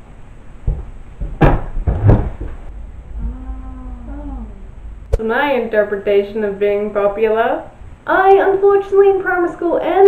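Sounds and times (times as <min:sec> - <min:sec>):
women drawn-out ooh: 0:03.2 - 0:04.7.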